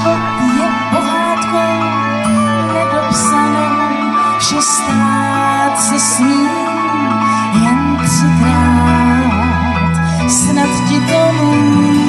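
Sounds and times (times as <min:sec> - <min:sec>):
amplified backing music: 0:00.0 - 0:12.0
woman singing into a microphone: 0:00.0 - 0:12.0.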